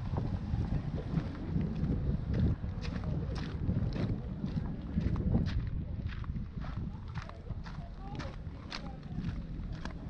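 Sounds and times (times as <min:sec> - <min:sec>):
footsteps crunching on gravel: 0:00.1 - 0:10.0.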